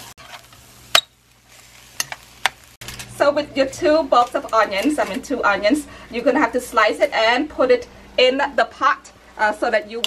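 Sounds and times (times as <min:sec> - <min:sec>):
meat frying hiss: 0:00.0 - 0:02.8.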